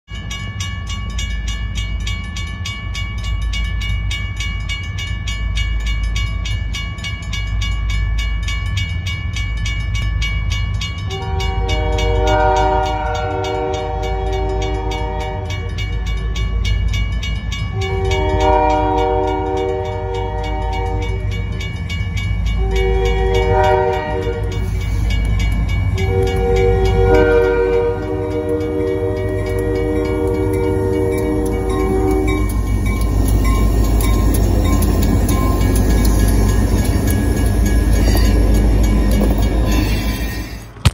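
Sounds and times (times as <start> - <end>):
crossing bell ringing: 0.1 - 40.8
locomotive rumble: 9.2 - 40.9
locomotive air horn blasts: 11.1 - 15.8, 17.8 - 21.3, 22.6 - 24.7, 26.0 - 32.4.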